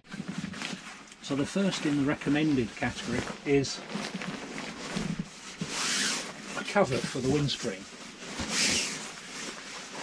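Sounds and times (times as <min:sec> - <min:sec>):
rustling and crinkling cover: 0:00.0 - 0:10.0.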